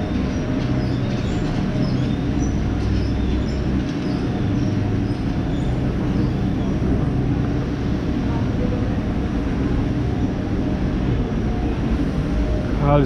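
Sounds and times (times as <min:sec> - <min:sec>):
city noise rumble: 0:00.0 - 0:13.0
faint steady hums: 0:00.0 - 0:13.0.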